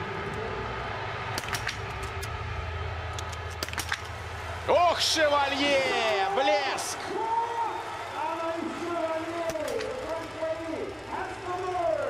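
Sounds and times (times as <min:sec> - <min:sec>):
crowd calling out gliding tones: 0:00.0 - 0:12.0.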